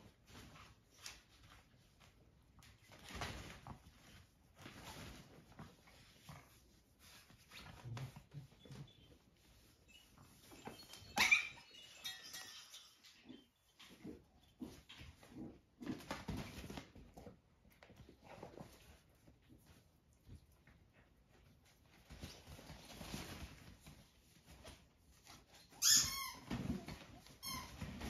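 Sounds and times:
dogs scuffling: 0.0 - 28.0
puppy high-pitched squeal: 10.0 - 13.4, 25.6 - 27.8.

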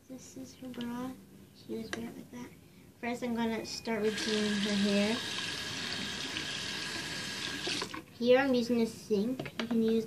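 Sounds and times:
tap water pouring into sink: 4.1 - 8.0.

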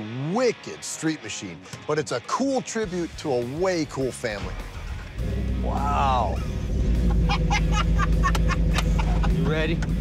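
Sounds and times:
truck engine running: 4.4 - 10.0.

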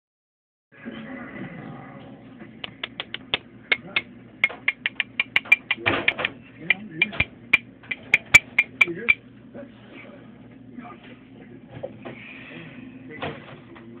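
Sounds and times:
ticks against glass jar: 2.8 - 9.2.

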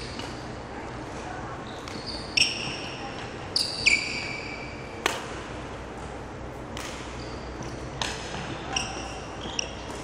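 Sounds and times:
racket hitting shuttlecock: 5.0 - 9.2.

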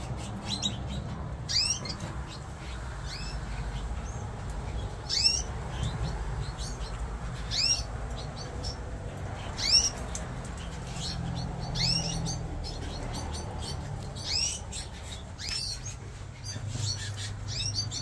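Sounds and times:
canaries chirping: 0.0 - 18.0.

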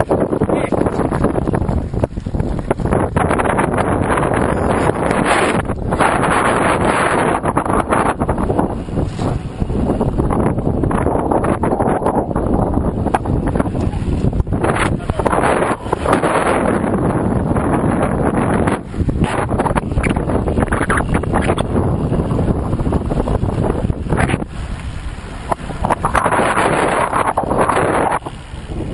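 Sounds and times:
wind buffeting microphone: 0.0 - 28.9.

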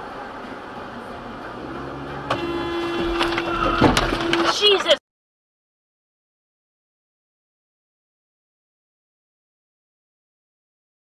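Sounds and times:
road and engine noise in car: 0.0 - 5.0
car horn blaring: 2.2 - 4.8.

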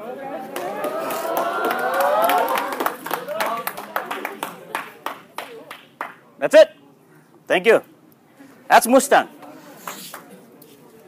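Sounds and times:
people laughing and cheering: 0.0 - 5.7
hand claps: 0.5 - 6.2, 9.8 - 10.4.

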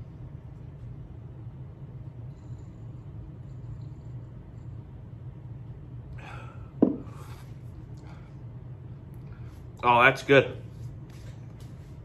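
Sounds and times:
low room tone hum: 0.0 - 12.0
breathy exhale: 6.2 - 8.3
glass set down on bar: 6.8 - 7.1.

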